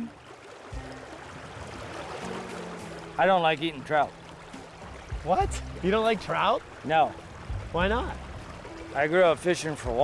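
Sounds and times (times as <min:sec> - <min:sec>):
river water rushing: 0:00.0 - 0:10.0.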